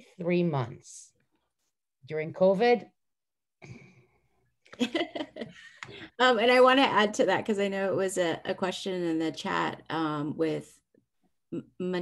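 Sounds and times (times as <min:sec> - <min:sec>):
woman laughing: 0:04.8 - 0:05.8.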